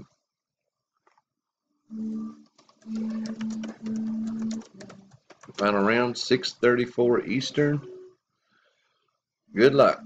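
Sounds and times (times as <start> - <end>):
computer keyboard keys clicking: 2.4 - 5.8
low steady tone: 7.2 - 8.2.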